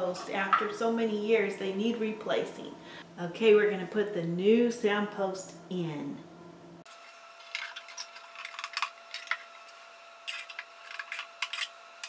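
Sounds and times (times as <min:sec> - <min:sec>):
small metal clicks and scrapes: 0:07.4 - 0:09.5, 0:10.2 - 0:11.8.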